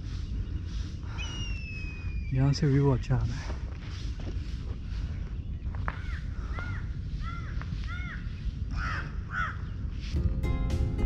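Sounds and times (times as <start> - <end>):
crow cawing: 5.9 - 9.6
background music: 10.2 - 11.0.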